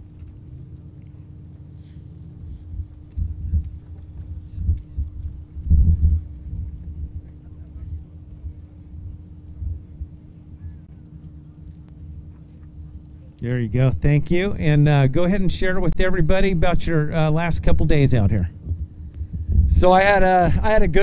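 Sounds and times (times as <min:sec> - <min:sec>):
faint steady hum: 0:00.0 - 0:21.0
wind buffeting microphone: 0:02.4 - 0:11.2, 0:17.5 - 0:21.0.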